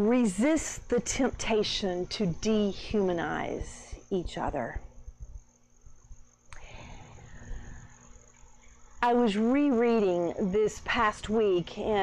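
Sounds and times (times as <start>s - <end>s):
crickets trilling: 0.0s - 12.0s
faint low hum: 0.0s - 12.0s.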